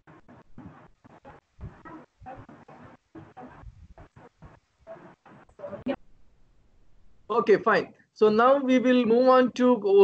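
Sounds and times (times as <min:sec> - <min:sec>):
choppy background sound: 0:00.0 - 0:10.0.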